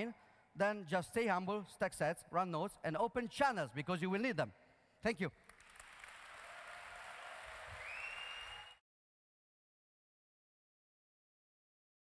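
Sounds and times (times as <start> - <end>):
audience applause: 5.5 - 8.8.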